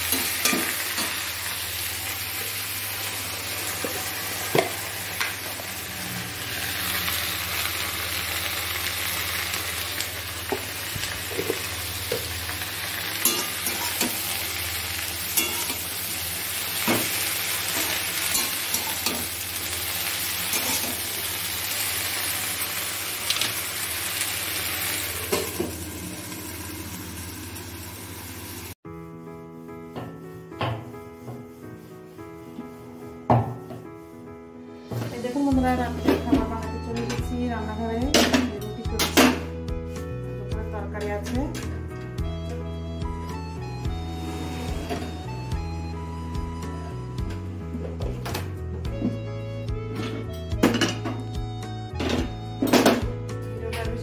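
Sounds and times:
greens sizzling in a pan: 0.0s - 28.8s
soft music: 28.8s - 54.0s.

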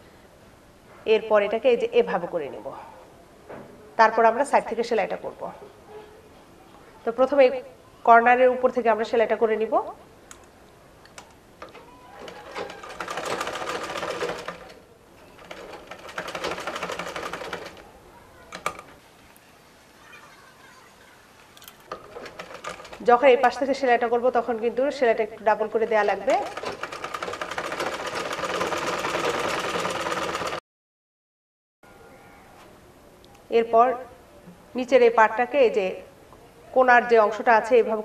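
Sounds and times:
sewing machine stitching: 11.6s - 17.8s, 21.7s - 23.2s, 26.0s - 30.6s.

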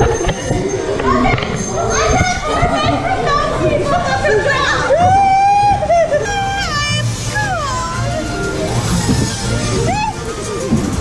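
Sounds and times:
water rushing and splashing: 0.0s - 11.0s
riders shrieking and laughing: 4.3s - 10.7s.

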